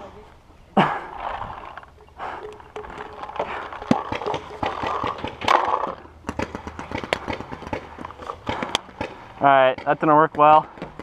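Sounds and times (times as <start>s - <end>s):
paintball markers firing: 2.9s - 11.0s.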